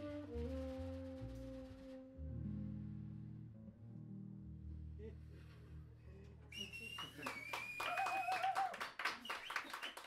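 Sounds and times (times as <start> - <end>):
band's low held note: 0.0 - 3.5
high whistle: 6.5 - 8.7
audience applauding: 6.6 - 10.0.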